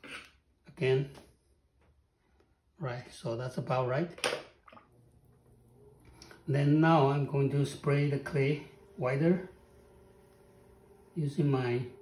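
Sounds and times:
potter's wheel humming: 0:04.8 - 0:12.0.

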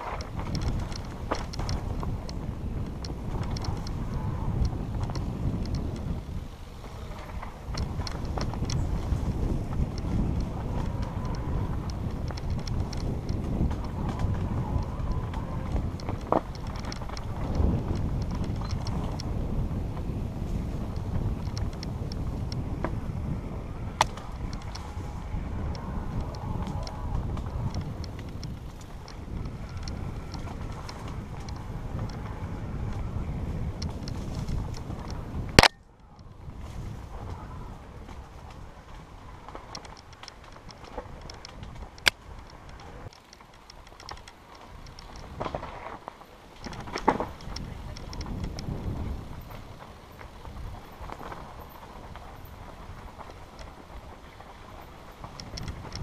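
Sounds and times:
bike rattle: 0:00.0 - 0:56.0
tyre noise on rough ground: 0:00.0 - 0:56.0
wind noise on microphone: 0:00.0 - 0:56.0.

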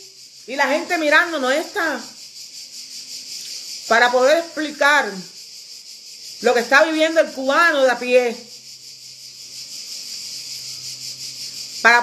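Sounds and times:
steady high-pitched hiss: 0:00.0 - 0:12.0.

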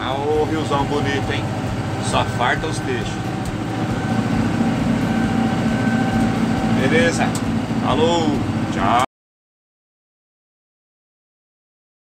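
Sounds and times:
high-pitched whine: 0:00.0 - 0:09.1
tractor engine running: 0:00.0 - 0:09.1.

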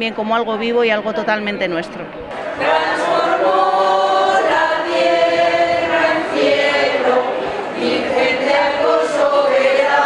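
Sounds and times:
group singing a hymn: 0:02.3 - 0:10.0.

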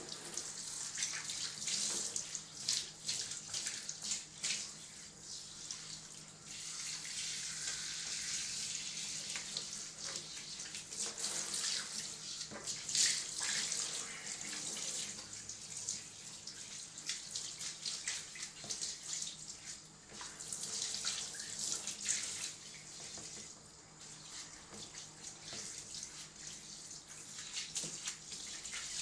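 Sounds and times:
water spraying and splashing: 0:00.0 - 0:29.0.

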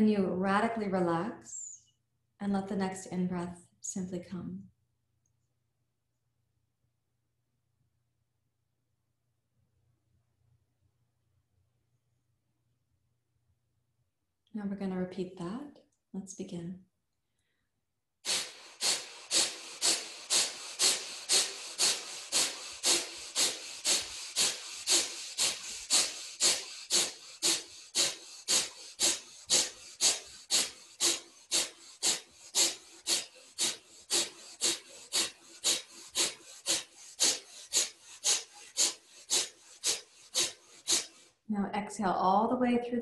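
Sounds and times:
forceful nasal exhales: 0:18.2 - 0:41.4.

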